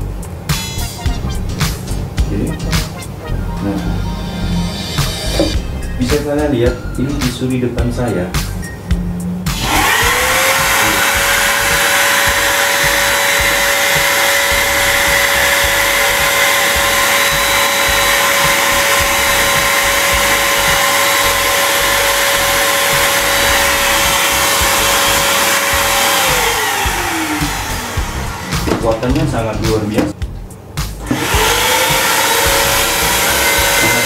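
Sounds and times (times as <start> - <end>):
vacuum cleaner motor whine: 9.5 - 28.9, 31.0 - 34.0.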